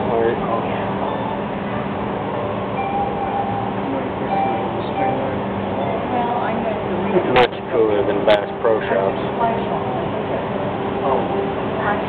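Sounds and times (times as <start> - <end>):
ambient din of aquarium: 0.0 - 12.0
faint ringing tones: 0.0 - 12.0.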